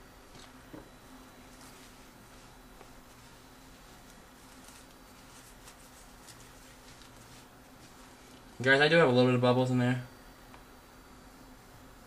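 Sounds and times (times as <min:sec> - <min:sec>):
low steady hum: 0:00.0 - 0:12.0
squeegee rubbing wet film: 0:01.4 - 0:08.6.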